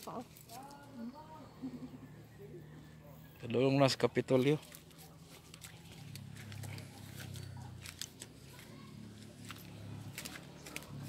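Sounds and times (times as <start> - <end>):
footsteps on dry palm fronds: 4.3 - 11.0.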